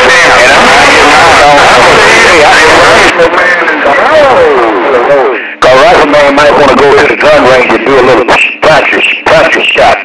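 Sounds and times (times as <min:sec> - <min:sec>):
men talking over cb radio: 0:00.0 - 0:10.0.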